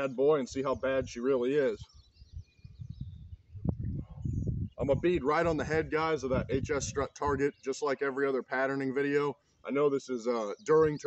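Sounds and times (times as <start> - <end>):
faint bird chirps: 0.0 - 4.9.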